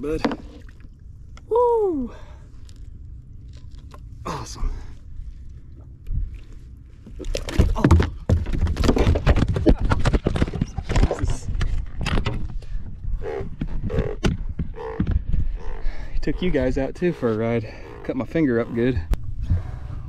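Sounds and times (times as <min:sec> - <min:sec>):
knocks rattles and scrapes: 0:07.4 - 0:12.7.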